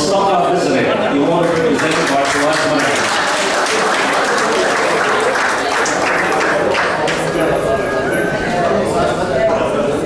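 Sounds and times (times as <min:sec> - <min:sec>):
audience applauding: 0:01.3 - 0:07.6.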